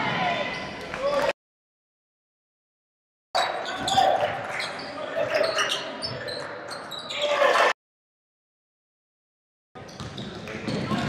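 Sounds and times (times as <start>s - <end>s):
voices of players and spectators: 0.0s - 1.4s, 3.4s - 7.8s
basketball bouncing on hardwood: 10.0s - 11.0s.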